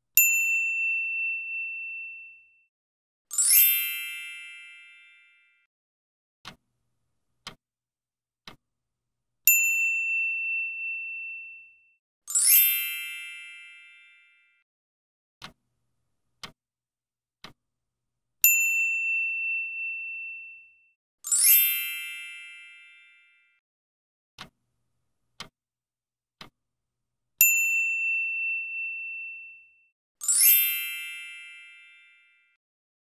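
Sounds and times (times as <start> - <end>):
bell ding: 0.2 - 2.7, 9.5 - 14.6, 18.5 - 23.5, 27.4 - 32.6
bright chime: 3.3 - 5.7, 9.5 - 14.6, 18.4 - 23.6, 27.4 - 32.6
clock ticking: 6.4 - 6.7, 7.3 - 7.6, 8.4 - 8.6, 15.4 - 15.7, 16.3 - 16.6, 24.4 - 24.6, 25.3 - 25.6.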